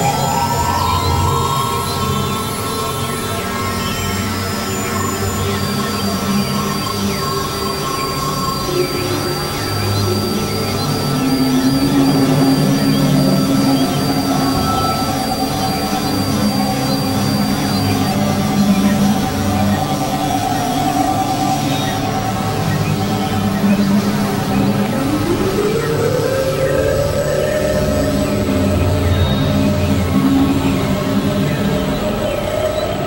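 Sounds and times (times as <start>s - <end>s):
electronic drone music: 0.0s - 33.0s
thin high wavering tone: 0.0s - 33.0s.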